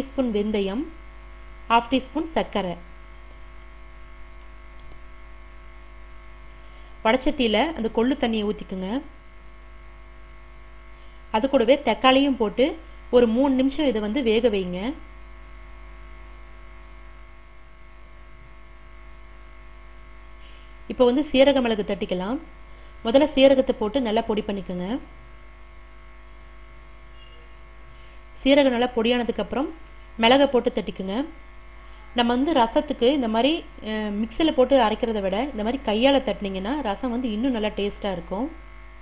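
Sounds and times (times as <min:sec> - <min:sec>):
steady electrical hum: 0:00.0 - 0:39.0.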